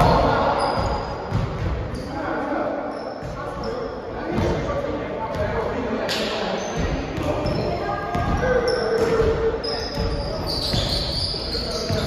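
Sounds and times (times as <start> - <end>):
sneaker squeaks: 0.0 - 4.5, 6.1 - 12.0.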